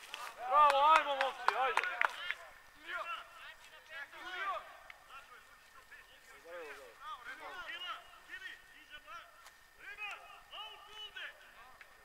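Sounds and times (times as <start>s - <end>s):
footballers shouting: 0.2s - 5.3s, 6.9s - 12.0s.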